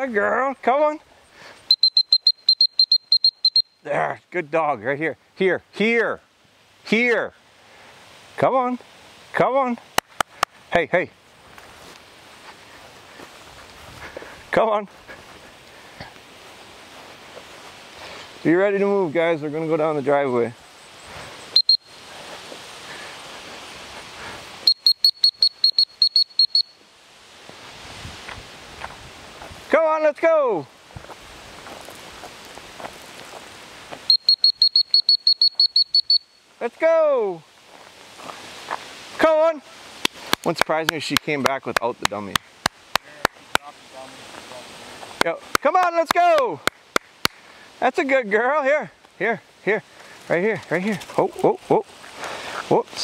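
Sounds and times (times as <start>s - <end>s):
dog whistle toots: 1.7s - 3.7s, 24.7s - 26.8s, 34.1s - 36.4s.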